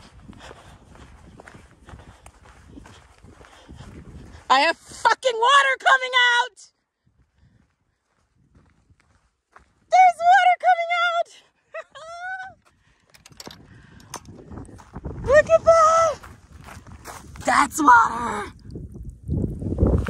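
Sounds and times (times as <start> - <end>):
woman whooping and squealing: 11.8 - 12.6
handling noise: 13.0 - 14.5.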